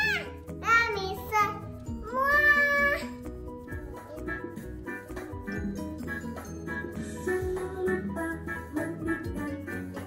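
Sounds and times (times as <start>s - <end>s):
child's high-pitched call: 0.0s - 3.2s
light background music: 0.0s - 10.0s.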